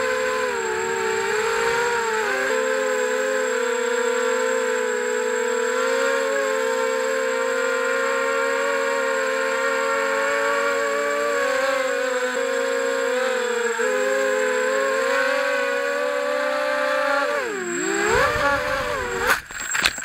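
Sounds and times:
drone motors whining: 0:00.0 - 0:20.0.

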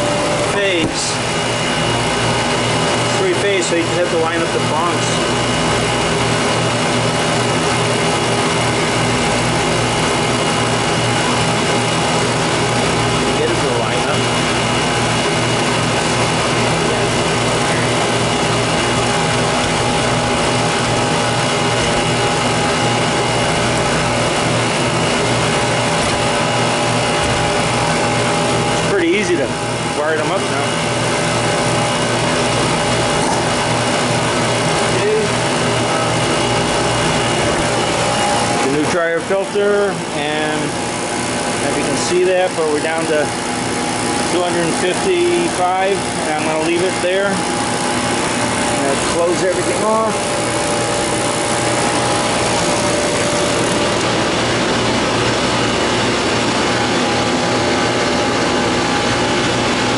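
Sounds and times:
vacuum pump humming: 0:00.0 - 0:59.9.

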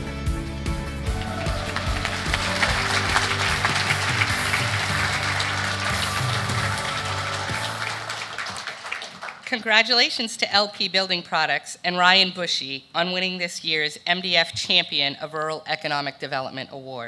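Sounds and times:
background music: 0:00.0 - 0:09.5
audience applauding: 0:01.0 - 0:09.8.

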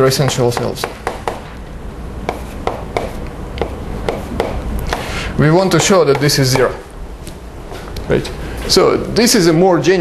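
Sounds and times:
chalk tapping on blackboard: 0:00.2 - 0:01.5, 0:02.2 - 0:05.1, 0:05.7 - 0:06.5.

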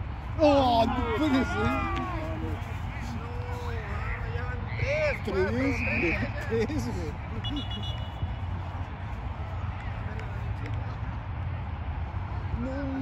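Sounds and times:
man shouting: 0:00.4 - 0:04.0.

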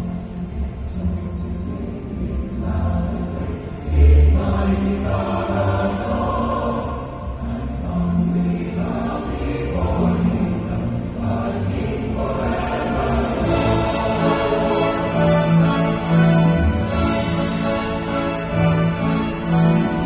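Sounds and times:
choir singing with orchestra: 0:00.0 - 0:20.0.

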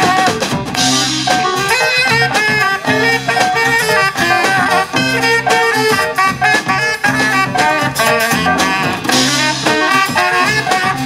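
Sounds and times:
drum kit: 0:00.0 - 0:11.0
electric bass: 0:00.0 - 0:11.0
keyboard: 0:00.0 - 0:11.0
saxophone melody: 0:00.0 - 0:11.0.

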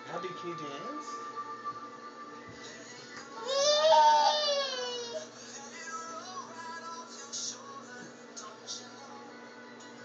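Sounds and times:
music playing: 0:00.0 - 0:10.0
child squealing: 0:03.4 - 0:05.2.

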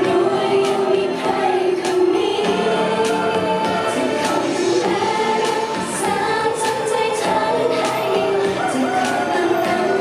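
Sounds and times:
pop backing music: 0:00.0 - 0:10.0
women singing together: 0:00.0 - 0:10.0.

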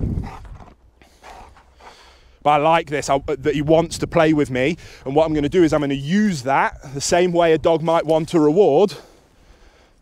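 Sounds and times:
dog huffing breaths: 0:00.0 - 0:02.3.

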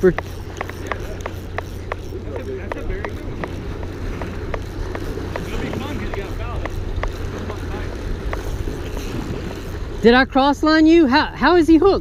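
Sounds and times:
waves washing against rocks: 0:00.0 - 0:10.2
fishing reel ticking: 0:00.0 - 0:12.0
wind buffeting microphone: 0:00.0 - 0:12.0.

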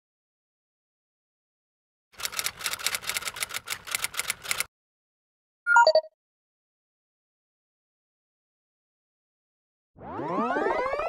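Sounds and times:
fast keyboard typing: 0:02.2 - 0:04.7.

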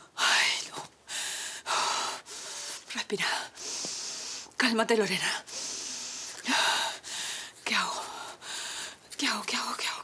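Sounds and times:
woman gasping breaths: 0:05.5 - 0:09.0.

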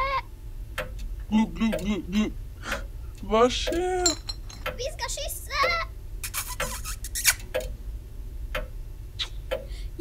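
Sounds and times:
steady low hum: 0:00.0 - 0:06.4, 0:07.0 - 0:10.0.

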